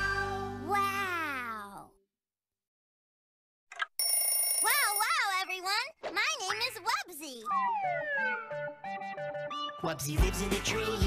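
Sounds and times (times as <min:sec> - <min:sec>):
high-pitched cartoon voice: 0:00.6 - 0:02.0
cartoon theme song: 0:07.5 - 0:11.0.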